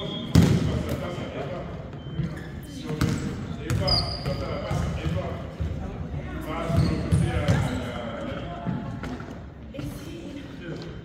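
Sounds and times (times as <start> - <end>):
echoing voices in a gym: 0.0 - 11.0.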